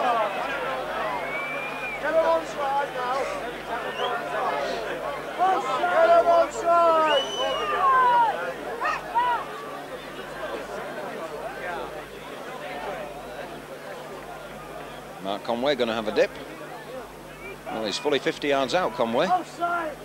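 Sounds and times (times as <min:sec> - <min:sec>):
crowd shouting: 0:00.0 - 0:15.1, 0:16.5 - 0:18.2
crowd murmur: 0:00.0 - 0:20.0.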